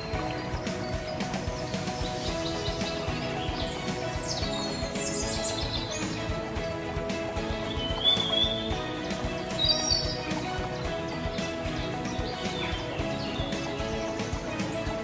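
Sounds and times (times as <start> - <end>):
instrumental music: 0.0 - 15.0
bird chirps and whistles: 7.7 - 10.2.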